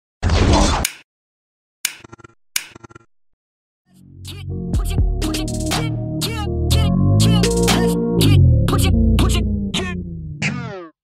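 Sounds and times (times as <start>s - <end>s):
music: 3.9s - 10.8s.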